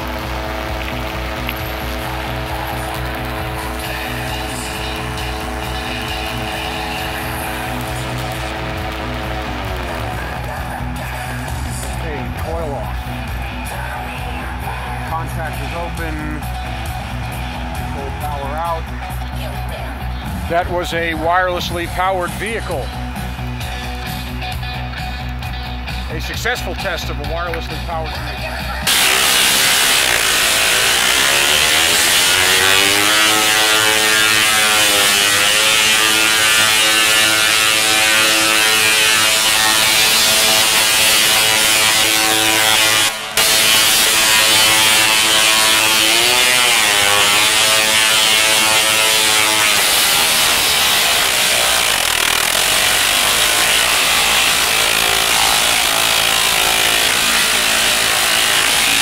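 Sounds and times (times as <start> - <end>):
tesla coil buzzing crackle: 0.0 - 14.0, 28.8 - 59.0
gliding pitched buzz: 0.0 - 19.0, 28.8 - 59.0.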